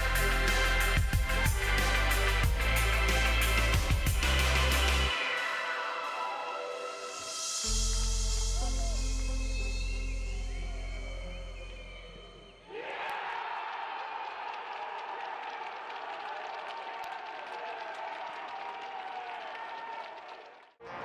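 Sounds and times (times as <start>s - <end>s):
background music: 0.0s - 12.6s, 20.8s - 21.0s
players shouting and cheering: 10.6s - 21.0s
people clapping: 12.7s - 21.0s.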